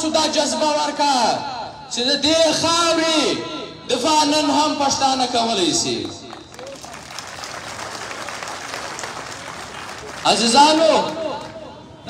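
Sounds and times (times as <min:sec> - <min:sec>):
crowd applauding: 0:06.0 - 0:11.8.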